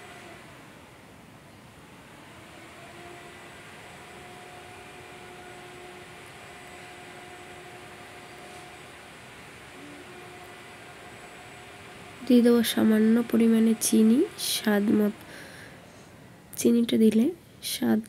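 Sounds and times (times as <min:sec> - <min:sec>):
faint hum: 0:00.0 - 0:18.0.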